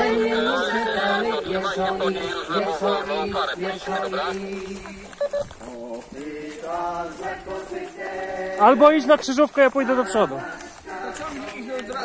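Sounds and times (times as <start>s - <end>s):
people singing together: 0.0s - 12.0s.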